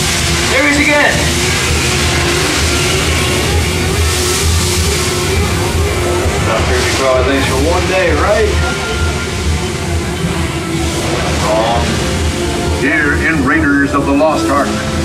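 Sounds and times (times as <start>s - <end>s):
low rumble and hiss: 0.0s - 15.0s
soundtrack music: 0.0s - 15.0s
voice: 0.4s - 1.5s, 6.3s - 8.9s, 11.4s - 12.0s, 12.8s - 15.0s.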